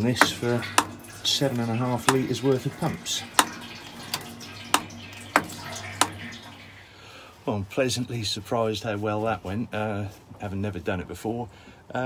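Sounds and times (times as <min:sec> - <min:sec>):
hand pump clicking: 0:00.0 - 0:06.7
oil being pumped: 0:00.0 - 0:07.0.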